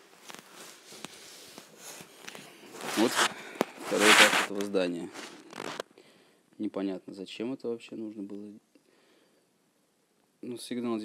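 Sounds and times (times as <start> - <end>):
soft footsteps: 0.0 - 5.8
clothing rustle: 0.0 - 5.9.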